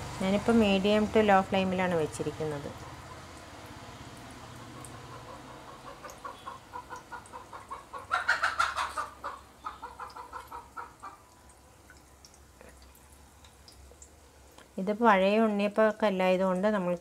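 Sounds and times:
hen clucking: 0:04.7 - 0:11.4.

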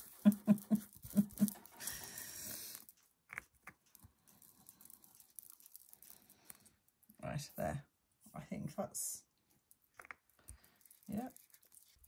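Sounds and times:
person laughing: 0:00.0 - 0:01.7.

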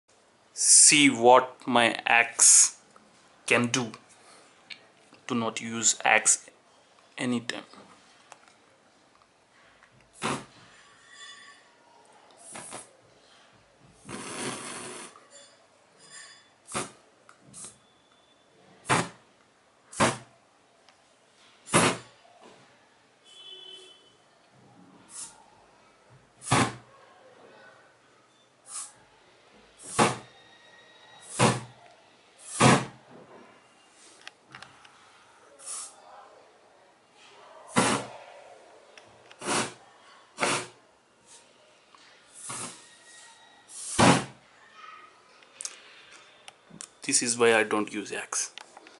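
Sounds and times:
aerosol spray hissing: 0:28.7 - 0:29.0, 0:35.6 - 0:36.0, 0:43.7 - 0:44.0.

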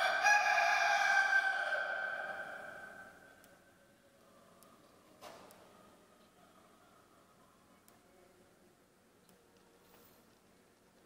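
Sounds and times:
rooster crowing with echo: 0:00.0 - 0:03.3.

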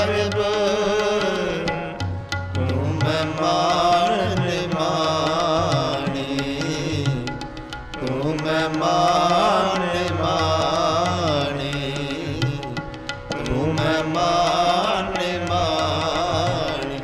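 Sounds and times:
harmonium melody: 0:00.0 - 0:17.0
tabla: 0:00.0 - 0:17.0.

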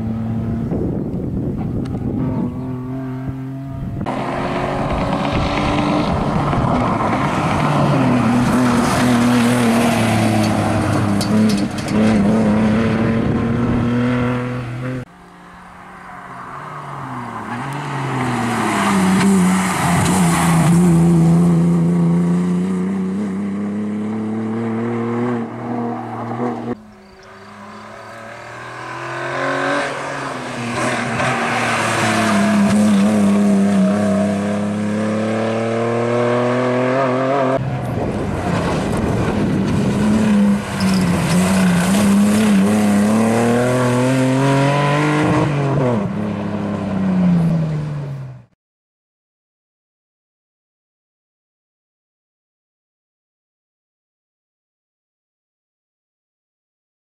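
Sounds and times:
car engine revving hard: 0:07.3 - 0:15.0, 0:18.6 - 0:37.6, 0:38.9 - 0:46.1
tyre squeal: 0:26.8 - 0:29.1, 0:40.7 - 0:41.9.

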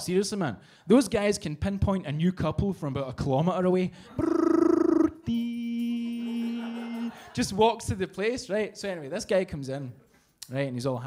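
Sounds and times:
man making vocal sound effects: 0:04.1 - 0:07.2.

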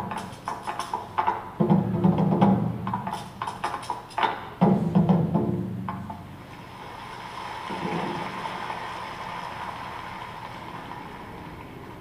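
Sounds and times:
taiko drum strikes: 0:00.0 - 0:06.3
applause: 0:06.8 - 0:12.0.

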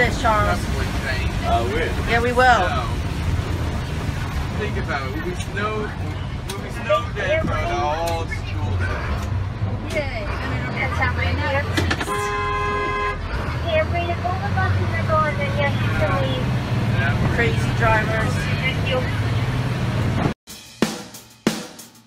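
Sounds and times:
heavy vehicle engine running: 0:00.0 - 0:20.4
vehicle horn blast: 0:12.0 - 0:13.3.

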